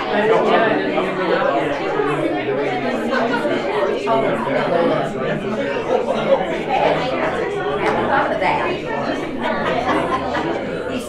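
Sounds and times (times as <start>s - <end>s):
overlapping indistinct chatter: 0.0s - 11.0s.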